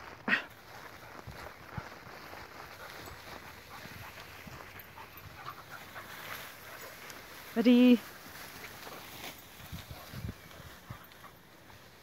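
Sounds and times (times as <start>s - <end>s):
rustling through tall crop: 0.0s - 12.0s.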